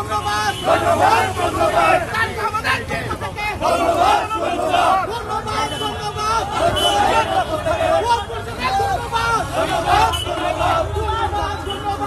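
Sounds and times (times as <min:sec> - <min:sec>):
marchers shouting slogans: 0:00.0 - 0:12.0.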